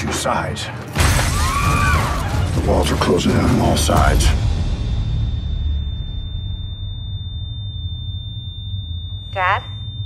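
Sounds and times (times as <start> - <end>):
high-pitched ringing tone: 5.0 - 10.0.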